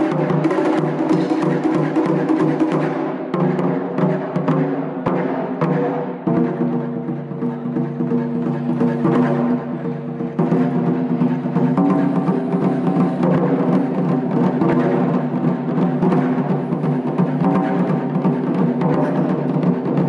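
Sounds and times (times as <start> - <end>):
taiko drums playing fast strikes: 0.0 - 20.0.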